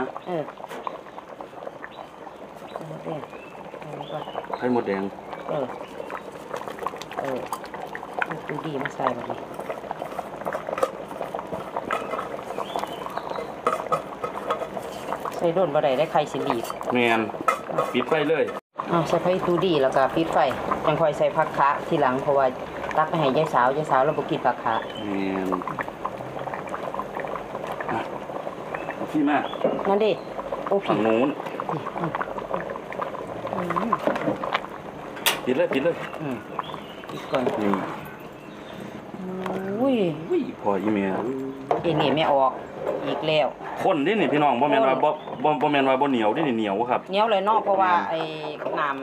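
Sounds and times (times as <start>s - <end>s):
broth bubbling at a rolling boil: 0.0s - 49.0s.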